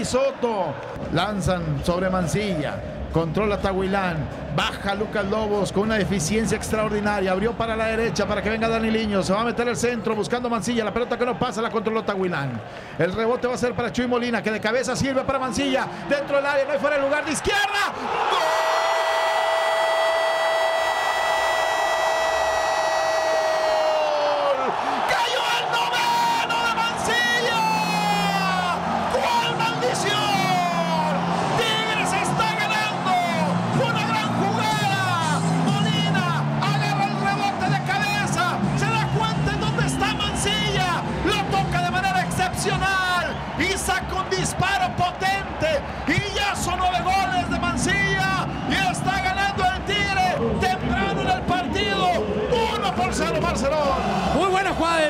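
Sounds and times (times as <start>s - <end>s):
music: 1.0s - 11.0s, 25.6s - 55.0s
excited rapid shouting: 15.4s - 55.0s.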